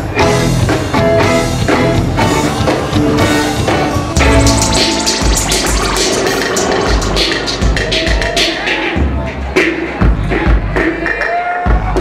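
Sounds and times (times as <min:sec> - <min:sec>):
rock band playing: 0:00.0 - 0:10.9.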